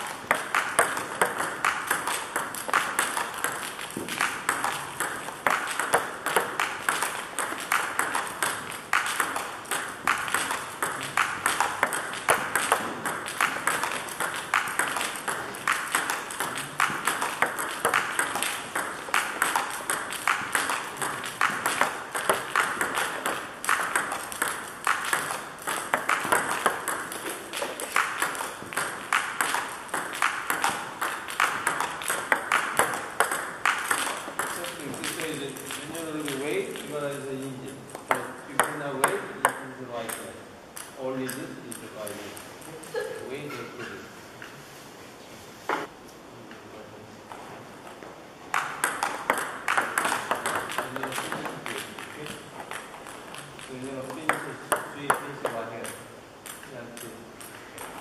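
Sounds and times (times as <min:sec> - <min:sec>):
table tennis ball clicking: 0:00.0 - 0:37.3, 0:48.5 - 0:58.0.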